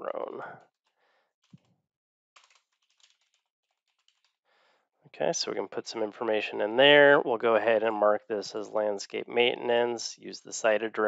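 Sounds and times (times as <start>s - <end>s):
typing on computer keyboard: 2.4s - 4.3s.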